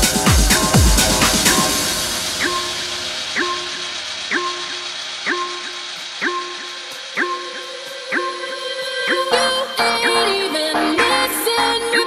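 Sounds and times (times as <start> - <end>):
wash of high noise: 0.0 - 8.2.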